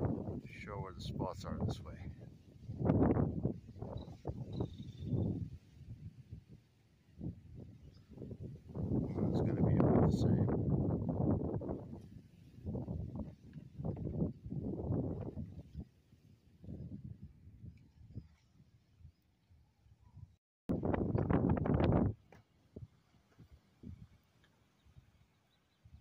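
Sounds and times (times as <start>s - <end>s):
wind buffeting microphone: 0.0s - 19.0s, 20.7s - 24.2s.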